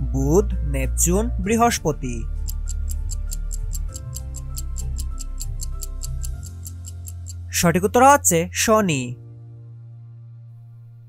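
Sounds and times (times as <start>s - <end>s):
soft background music: 0.0s - 11.0s
clock ticking rapidly: 1.6s - 8.3s.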